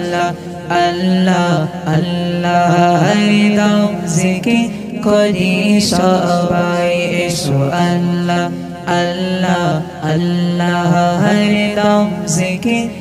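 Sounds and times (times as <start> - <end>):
man singing devotional chant: 0.0 - 13.0.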